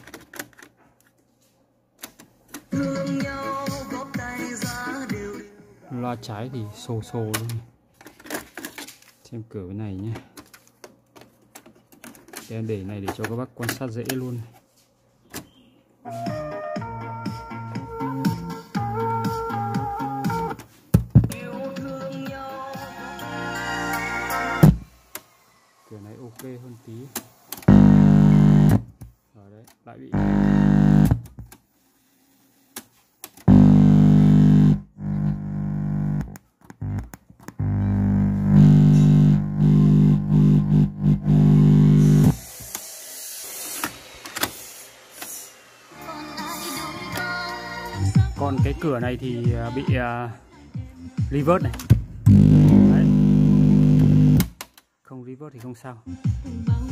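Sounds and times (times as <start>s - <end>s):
music from cassette player: 2.6s - 5.6s, 16.1s - 25.3s, 37.7s - 42.9s, 43.5s - 50.1s, 50.7s - 54.5s
loud thumps: 20.9s - 21.4s.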